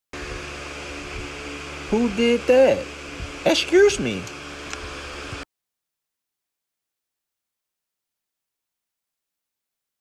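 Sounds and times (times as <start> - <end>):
background hum and hiss: 0.2 - 5.4
person speaking: 1.9 - 4.4.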